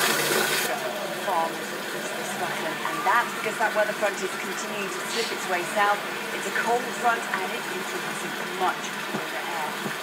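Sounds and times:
running water rushing: 0.0 - 10.0
faint newsreader voice on tv: 0.7 - 9.9.

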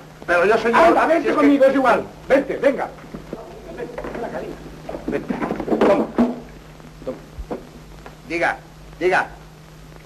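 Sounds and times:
film soundtrack hum: 0.0 - 10.0.

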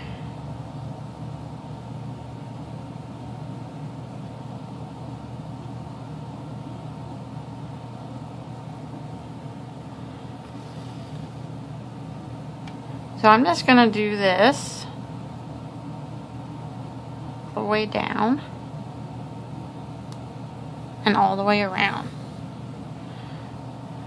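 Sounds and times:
low background hum: 0.0 - 24.0.

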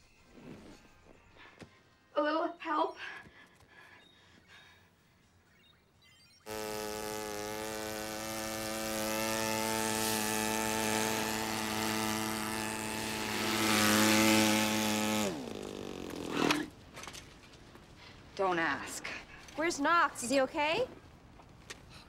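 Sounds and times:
small motorbike engine buzzing: 6.4 - 16.7.

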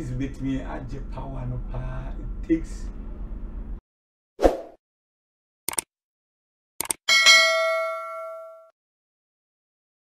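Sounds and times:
notification bell ding: 7.1 - 8.7.

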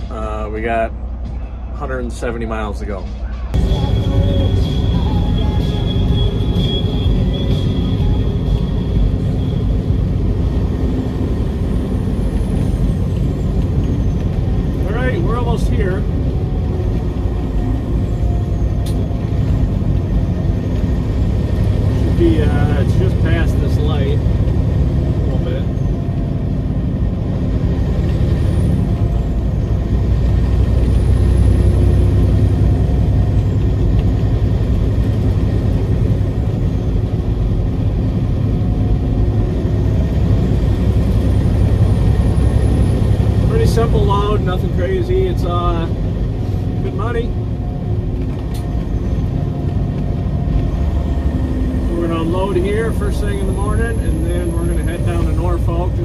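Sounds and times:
road noise: 0.0 - 56.0
truck diesel engine droning: 0.0 - 56.0.

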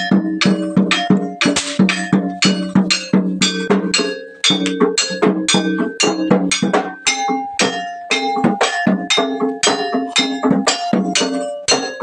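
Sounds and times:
metal gong-chime notes: 0.0 - 12.0.

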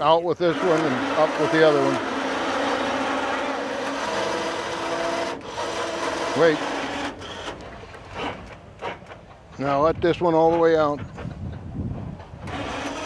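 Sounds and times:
rasping gear noise: 0.0 - 9.8, 12.2 - 13.0
electric motor whirring: 0.4 - 9.1, 12.4 - 13.0.

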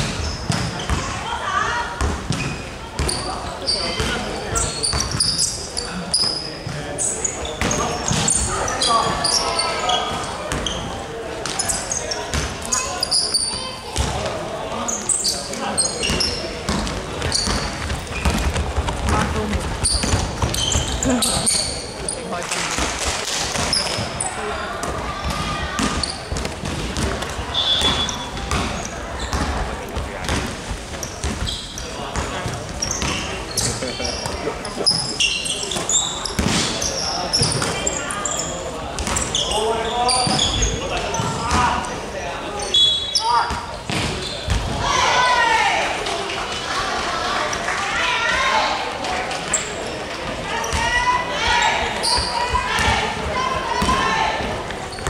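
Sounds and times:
sneakers squeaking: 0.0 - 1.2, 2.0 - 45.0, 49.4 - 55.0.

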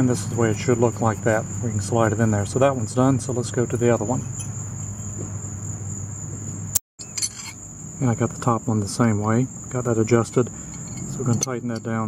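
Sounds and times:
crickets chirping: 0.0 - 12.0
metal hand tools clinking: 7.0 - 7.6, 10.7 - 12.0.

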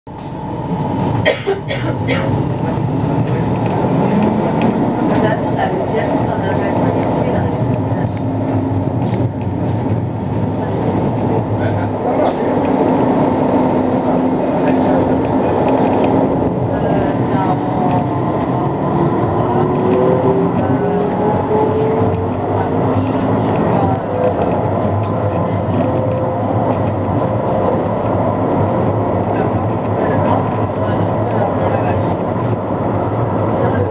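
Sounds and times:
tram motor whine rising: 0.1 - 1.3
tram running noise: 0.1 - 33.9.

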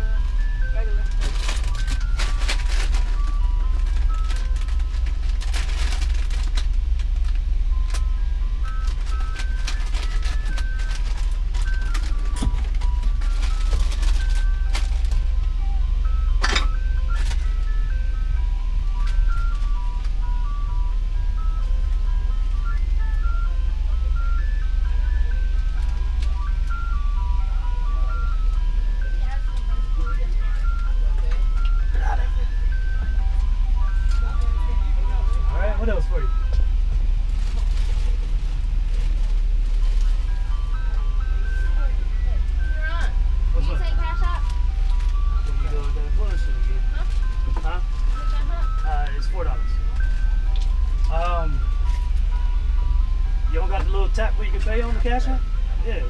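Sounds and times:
ice cream truck jingle: 0.0 - 56.0
steady low hum: 0.0 - 56.0.

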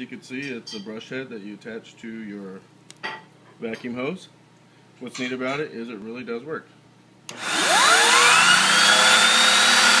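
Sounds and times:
vacuum cleaner whining: 7.3 - 10.0.

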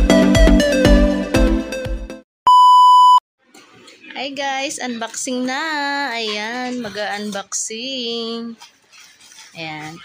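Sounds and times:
high electronic beep: 2.5 - 3.2.

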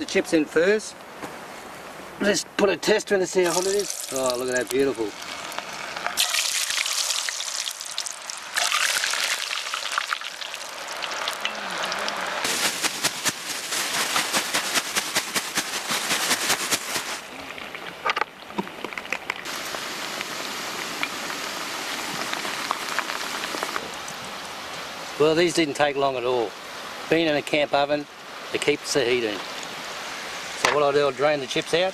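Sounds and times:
hot oil sizzling and crackling: 3.3 - 25.2, 29.4 - 31.9.

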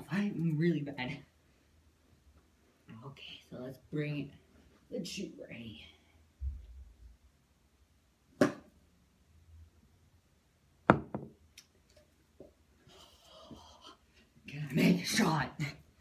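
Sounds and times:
person speaking: 0.0 - 1.3, 2.9 - 6.1, 14.5 - 15.9.

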